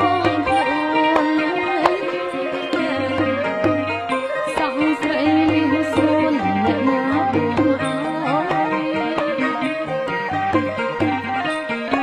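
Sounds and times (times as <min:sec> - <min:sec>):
sliding melody: 0:00.0 - 0:12.0.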